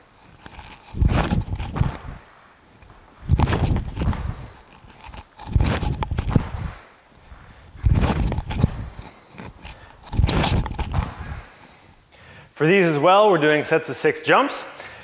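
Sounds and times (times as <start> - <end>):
shoe scuffs: 0.3 - 4.8, 5.5 - 11.6
feet landing on gym floor: 1.0 - 2.3, 3.2 - 4.4, 5.6 - 6.9, 7.8 - 8.9, 10.2 - 11.5.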